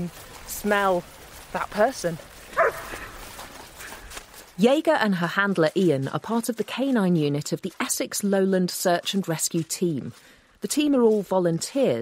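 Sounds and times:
dog barking: 2.5s - 3.1s.

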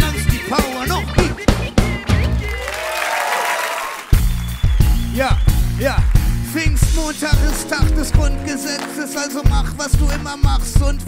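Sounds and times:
band playing: 0.0s - 11.0s
audience applauding: 1.6s - 9.4s.

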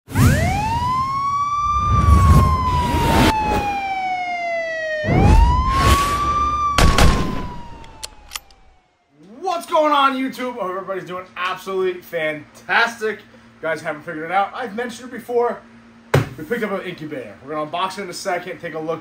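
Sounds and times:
wailing siren: 0.1s - 9.2s
man speaking: 9.2s - 15.6s, 16.4s - 19.0s.

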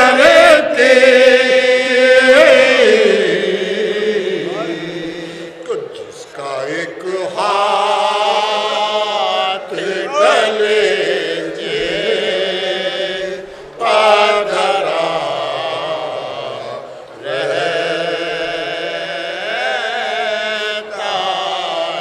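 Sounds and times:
person chanting an elegy: 4.3s - 5.2s.

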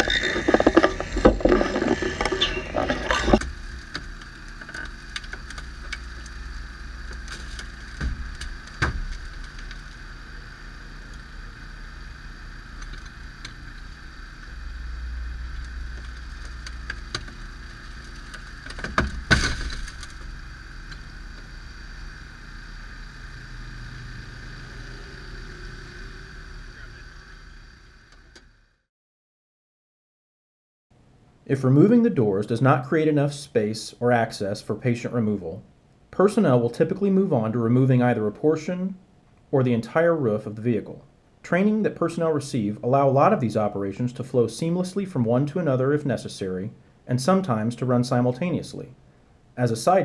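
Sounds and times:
hydraulic power unit whining: 0.0s - 28.8s
door metal cracking: 18.0s - 20.3s.

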